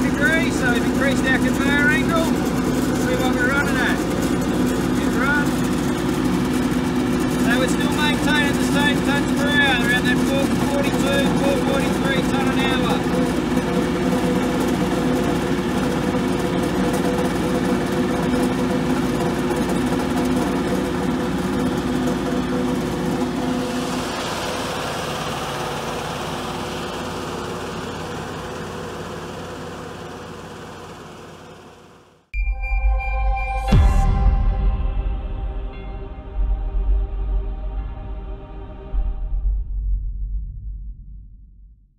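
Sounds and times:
conveyor running with hum: 0:00.0 - 0:32.2
electronic music: 0:32.4 - 0:39.4.

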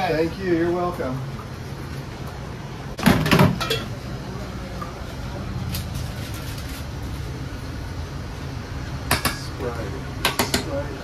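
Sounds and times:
low hum of kitchen equipment: 0:00.0 - 0:11.0.

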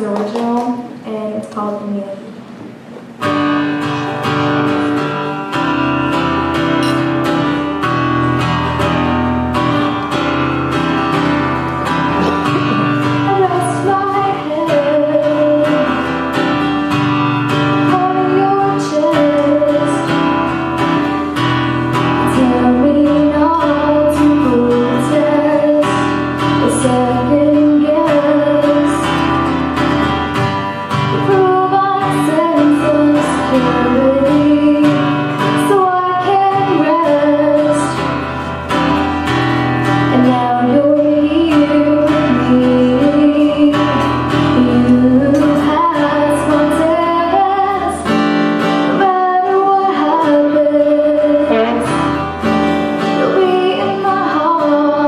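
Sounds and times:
acoustic guitar strumming: 0:00.0 - 0:55.0
woman singing: 0:11.8 - 0:39.0, 0:39.8 - 0:55.0.

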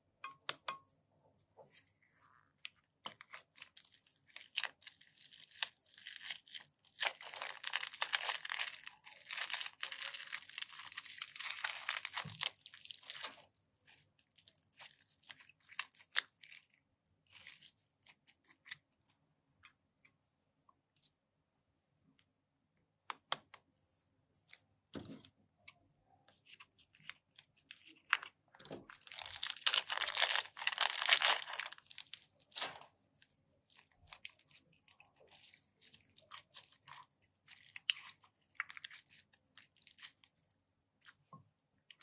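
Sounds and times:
plastic bag crinkling: 0:03.6 - 0:13.5, 0:27.9 - 0:32.9.

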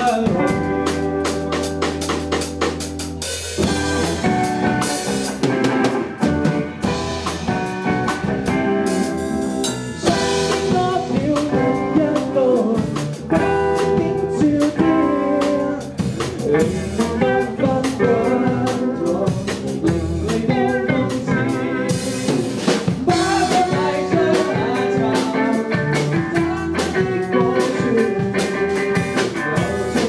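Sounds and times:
rock band playing live: 0:00.0 - 0:30.0.

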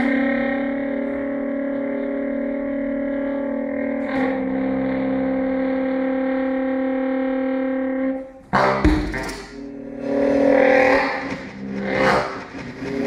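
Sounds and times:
saxophone drone: 0:00.0 - 0:13.0
processed train sounds: 0:08.6 - 0:13.0.

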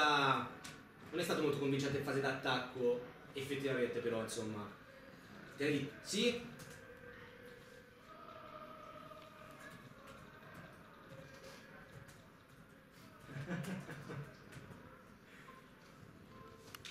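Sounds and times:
faint distant voices: 0:00.0 - 0:16.9
man laughing: 0:13.2 - 0:14.5.

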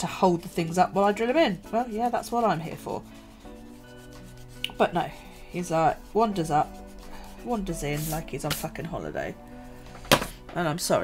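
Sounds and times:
faint background music: 0:00.0 - 0:11.0
marker rubbing on paper: 0:01.6 - 0:08.7.

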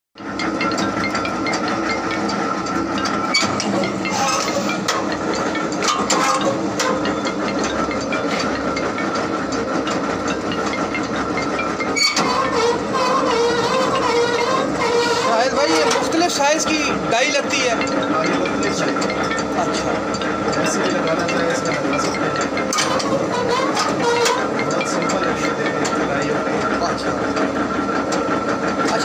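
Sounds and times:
sharp clicks and knocks: 0:00.2 - 0:29.0
workshop machinery running: 0:00.2 - 0:29.0.

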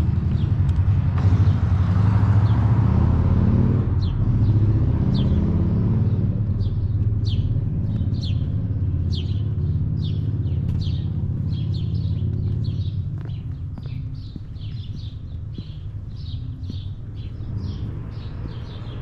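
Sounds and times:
car passing: 0:00.0 - 0:19.0
traffic rumble: 0:00.0 - 0:19.0
bird chirping: 0:04.0 - 0:19.0.

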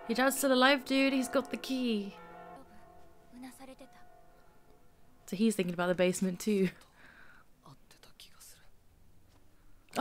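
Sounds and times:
soft-spoken dialogue: 0:00.1 - 0:08.8.

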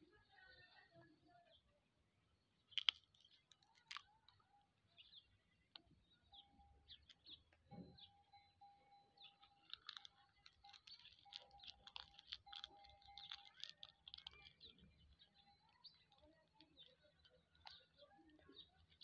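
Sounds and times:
small birds chirping: 0:00.0 - 0:19.0
thin steady tone: 0:06.0 - 0:19.0.

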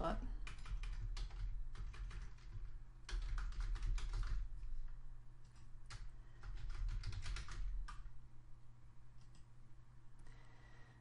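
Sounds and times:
steady low hum: 0:00.0 - 0:11.0
typing on computer keyboard: 0:00.4 - 0:04.6, 0:05.4 - 0:08.1.

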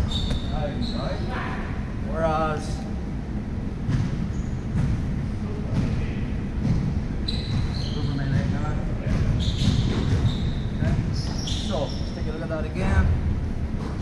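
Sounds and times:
thuds in sports hall: 0:03.8 - 0:11.4.

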